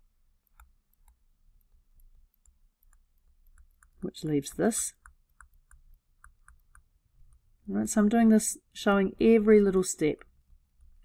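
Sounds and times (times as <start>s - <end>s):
stylus tapping on tablet screen: 5.0s - 7.5s.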